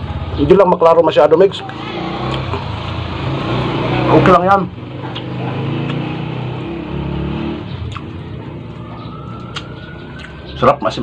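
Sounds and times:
vehicle engine running: 0.0s - 9.3s.

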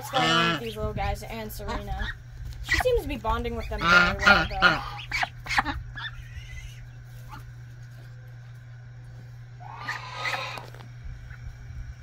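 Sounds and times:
goose and goslings calling: 0.0s - 7.5s, 9.6s - 11.4s
steady low hum: 0.0s - 12.0s.

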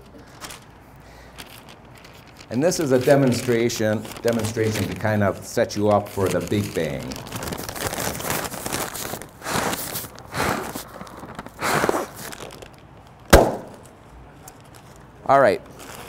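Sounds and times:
paper bag crinkling: 0.0s - 13.9s, 15.7s - 16.0s
breaths blowing into bag: 0.2s - 1.8s, 7.8s - 12.5s
paper bag bursting: 1.5s - 13.9s.

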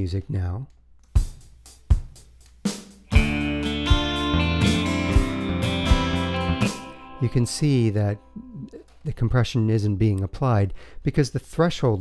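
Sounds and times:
kick drum and cymbal hits: 1.2s - 6.9s.

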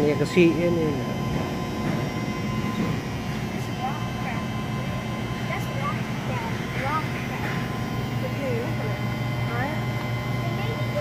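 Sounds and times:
tank pumps humming: 0.0s - 11.0s.

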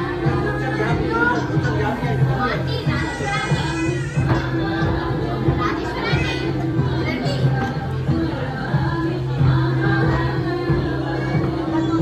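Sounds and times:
children's voices: 0.0s - 12.0s
song with sung melody and beat: 0.0s - 12.0s.

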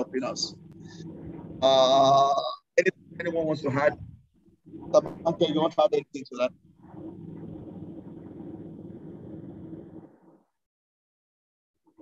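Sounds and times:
low hum and rumble: 0.0s - 10.6s.

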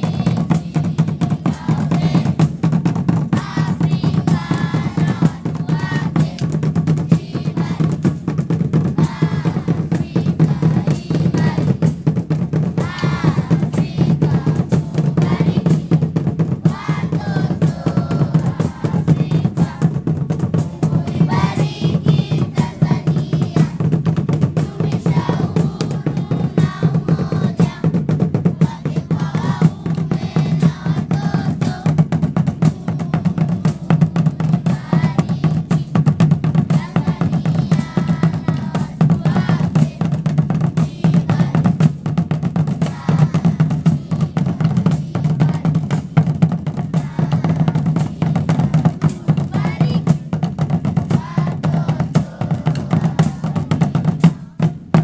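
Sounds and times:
children singing together: 0.0s - 42.0s, 42.6s - 55.0s
drum band snare and bass drums: 0.0s - 55.0s.

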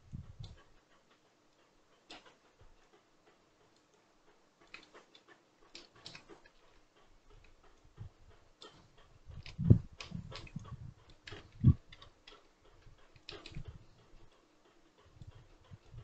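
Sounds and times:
computer mouse clicks: 4.6s - 6.7s, 8.6s - 14.1s.

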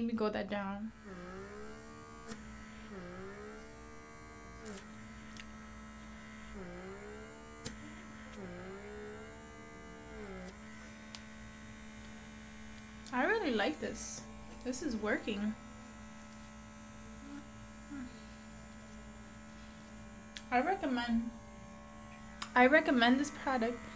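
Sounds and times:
small vacuum motor humming: 0.8s - 23.9s.

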